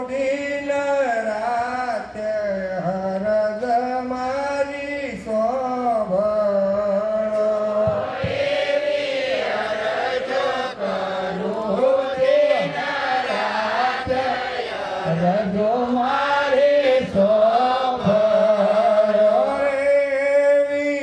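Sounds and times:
man chanting: 0:00.0 - 0:08.0, 0:11.6 - 0:21.0.

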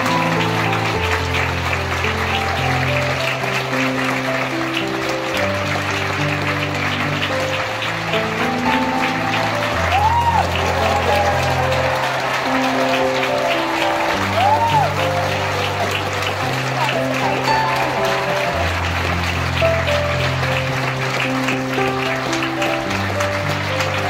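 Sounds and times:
audience applauding: 0:00.0 - 0:24.0.

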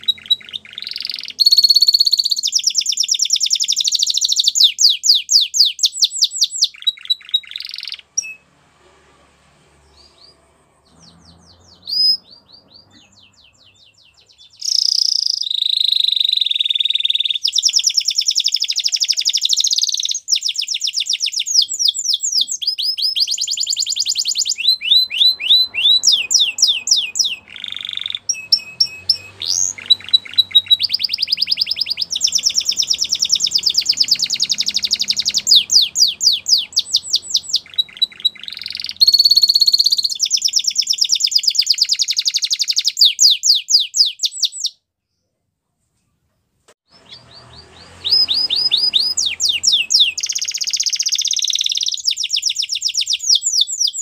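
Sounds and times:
canary singing rapid trills: 0:00.0 - 0:08.5, 0:09.8 - 0:44.8, 0:46.9 - 0:54.0.

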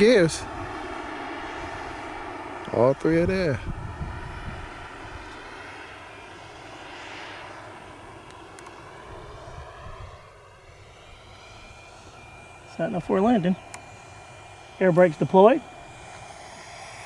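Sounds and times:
jet engine whine: 0:00.0 - 0:17.0.

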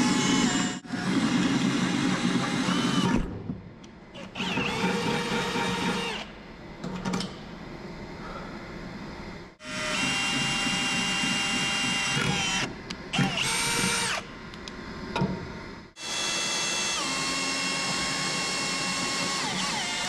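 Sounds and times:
drill motor whining: 0:00.0 - 0:03.2, 0:04.2 - 0:06.3, 0:09.6 - 0:14.2, 0:16.0 - 0:20.0.

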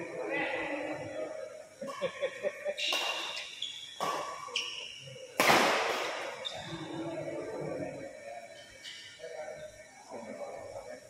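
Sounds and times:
shoe squeaks on court floor: 0:02.8 - 0:05.0
racket striking shuttlecock: 0:04.0 - 0:04.6, 0:05.4 - 0:06.3
hard smack ringing in hall: 0:05.4 - 0:06.3.

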